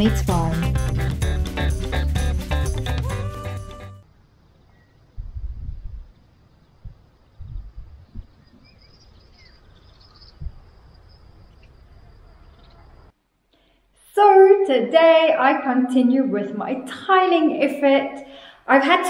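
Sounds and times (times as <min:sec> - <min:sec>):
intro music: 0:00.0 - 0:04.0
faint bird chirps: 0:04.6 - 0:05.2, 0:06.1 - 0:13.1
wind buffeting microphone: 0:05.1 - 0:10.9.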